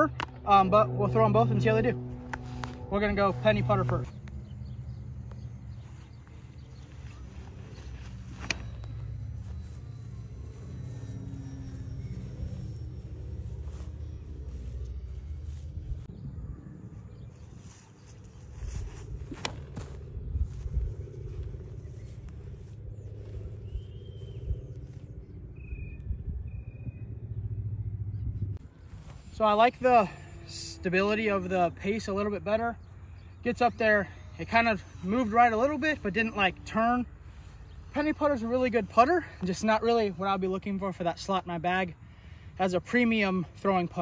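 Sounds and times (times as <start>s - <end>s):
low outdoor rumble: 0.0s - 44.0s.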